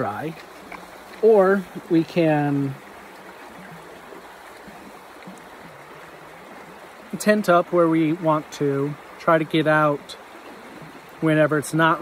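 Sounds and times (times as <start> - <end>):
creek flowing over rocks: 0.0 - 12.0.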